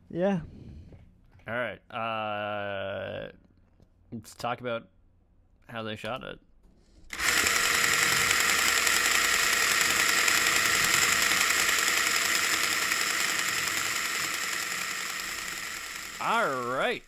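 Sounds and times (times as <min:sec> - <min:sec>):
mechanical whirring and clattering: 0:07.1 - 0:17.0.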